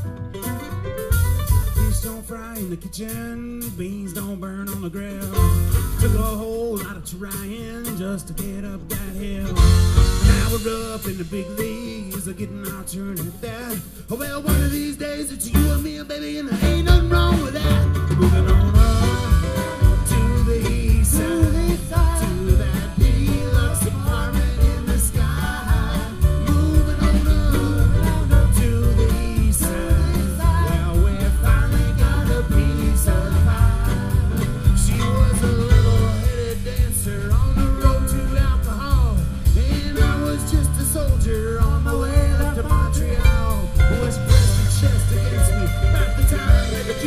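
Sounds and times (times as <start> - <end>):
mandolin: 0.0 - 2.2, 42.5 - 47.0
plucked upright bass: 0.0 - 2.3, 4.6 - 7.0, 7.9 - 11.1, 14.5 - 14.8, 15.5 - 15.9, 16.6 - 47.0
strummed acoustic guitar: 0.0 - 47.0
person singing: 1.8 - 47.0.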